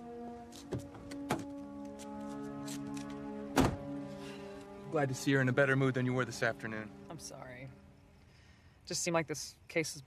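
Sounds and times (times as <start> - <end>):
soft background music: 0.0 - 8.2
car door shutting: 0.5 - 4.0.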